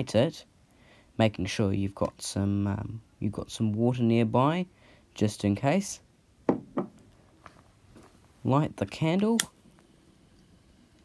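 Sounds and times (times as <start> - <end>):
knocks on wooden tabletop: 6.5 - 7.0.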